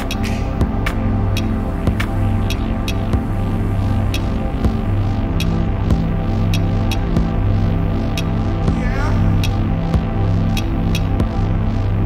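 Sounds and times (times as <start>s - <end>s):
faint hi-hat ticks: 0.0s - 8.4s, 10.4s - 11.4s
electropop instrumental: 0.0s - 12.0s
low bass drone: 0.0s - 12.0s
sustained keyboard chords: 0.0s - 12.0s.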